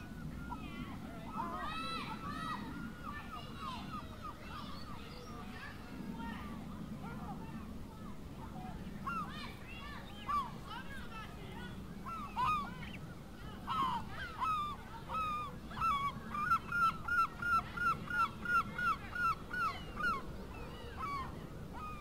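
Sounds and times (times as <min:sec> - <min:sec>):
large birds calling: 0:11.6 - 0:22.0.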